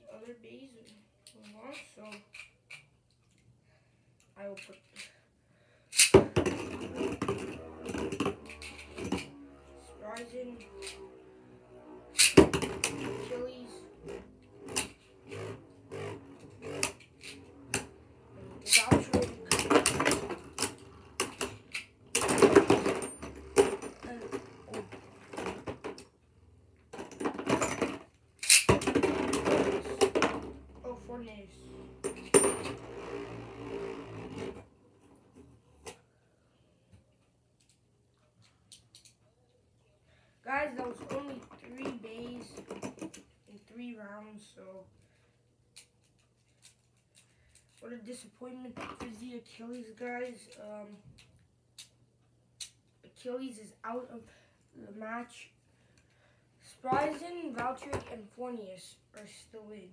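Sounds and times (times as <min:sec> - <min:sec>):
spinning tops whirring: 0:06.7 - 0:25.3.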